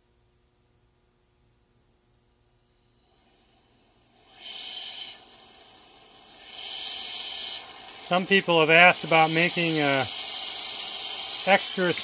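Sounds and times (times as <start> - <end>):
airy hiss bursts: 3.0 - 12.0.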